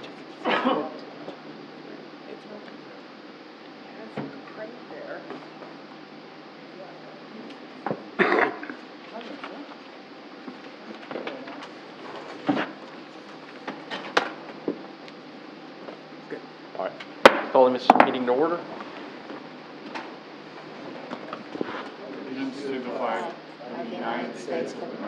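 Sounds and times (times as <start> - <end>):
low murmured voices: 0.0 - 13.6, 20.5 - 25.0
objects knocking on desks: 17.3 - 18.2.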